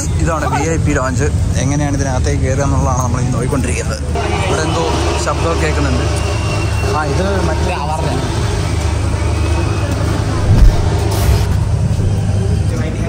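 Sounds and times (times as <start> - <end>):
crowd chatter: 7.2 - 13.0
steady low rumble: 10.2 - 12.3
loud knock: 10.4 - 11.2.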